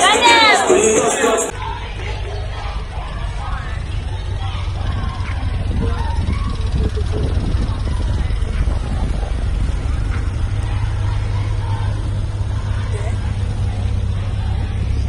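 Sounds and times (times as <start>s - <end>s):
cars driving slowly past: 0.0s - 15.0s
faint voices: 0.0s - 15.0s.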